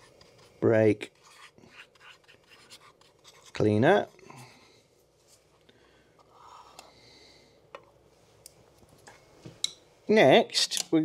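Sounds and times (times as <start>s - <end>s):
soft rustle: 5.0s - 5.7s.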